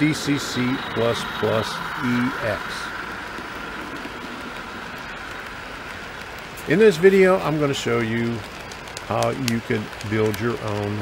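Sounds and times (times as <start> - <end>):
man speaking: 0.0 - 3.0, 6.6 - 8.4, 9.1 - 11.0
steady hiss: 0.0 - 11.0.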